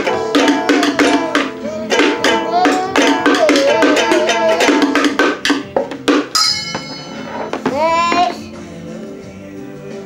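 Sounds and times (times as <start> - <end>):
child singing high note: 7.7 - 8.5.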